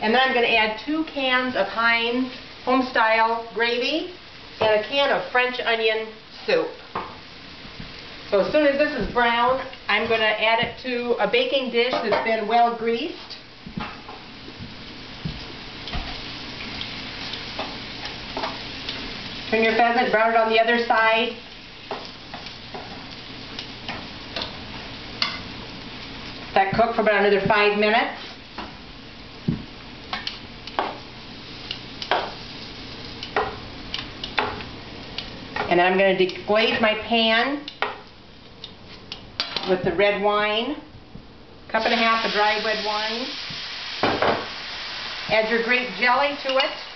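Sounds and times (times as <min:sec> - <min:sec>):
meat sizzling in oil: 0:00.0 - 0:39.6, 0:41.7 - 0:46.9
utensil clicking against pan: 0:30.1 - 0:30.9, 0:33.2 - 0:34.5.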